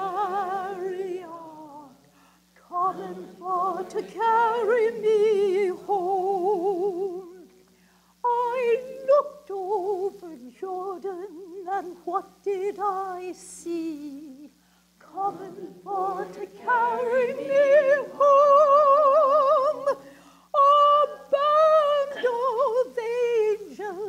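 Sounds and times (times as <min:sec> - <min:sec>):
woman singing a spiritual solo: 0:00.0 - 0:07.5, 0:08.2 - 0:24.0.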